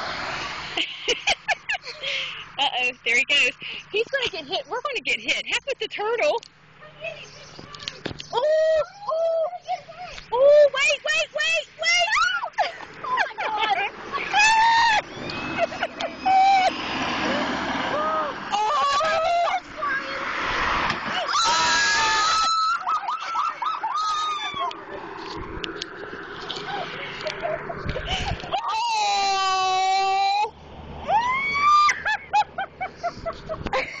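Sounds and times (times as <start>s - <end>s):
passing road traffic: 0.0s - 34.0s
girls shrieking and squealing: 6.9s - 25.0s, 26.6s - 32.4s.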